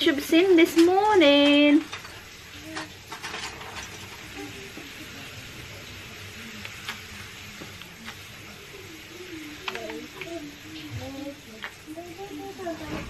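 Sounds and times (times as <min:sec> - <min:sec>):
room noise hiss: 0:00.0 - 0:13.0.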